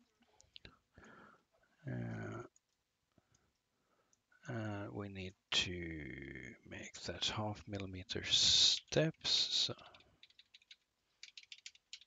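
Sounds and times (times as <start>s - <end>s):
man saying uh: 1.9s - 2.5s, 4.5s - 9.8s
computer mouse clicks: 9.9s - 12.0s.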